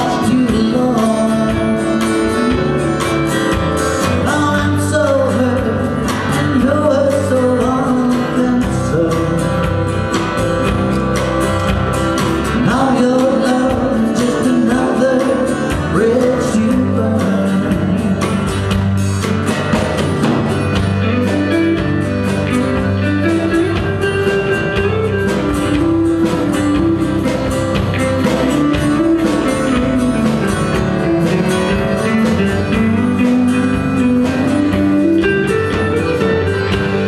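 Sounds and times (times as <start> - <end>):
acoustic guitars: 0.0 - 37.0
drums: 0.0 - 37.0
electric guitar: 0.0 - 37.0.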